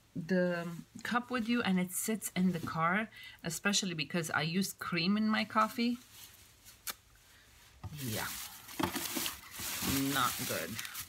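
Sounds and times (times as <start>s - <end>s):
items rubbing and rustling: 5.6s - 6.8s, 7.4s - 11.0s.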